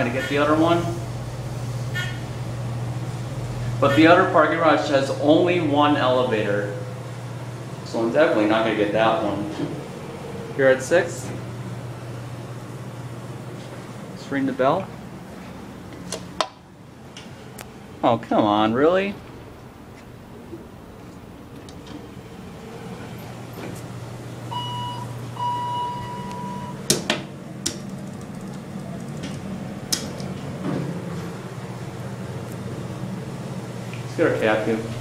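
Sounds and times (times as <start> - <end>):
elevator car hum: 0.0 - 35.0
short high tone: 24.5 - 26.8.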